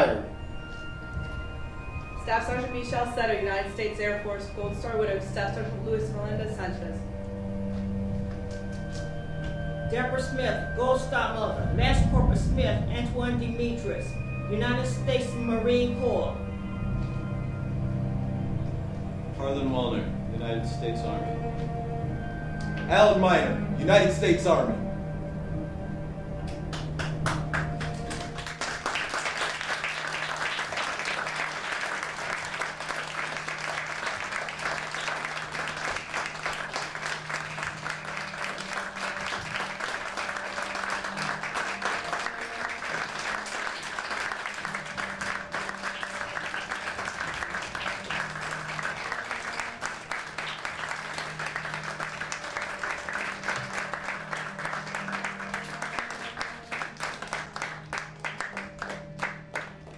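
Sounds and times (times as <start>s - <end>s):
low sustained background music: 0.0s - 59.9s
audience applauding: 26.5s - 59.9s.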